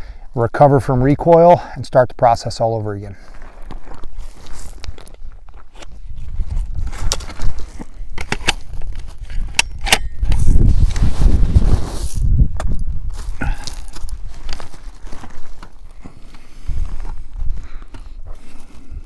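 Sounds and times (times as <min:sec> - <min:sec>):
sharp clicks and rustles: 0:04.6 - 0:11.4, 0:13.7 - 0:16.5.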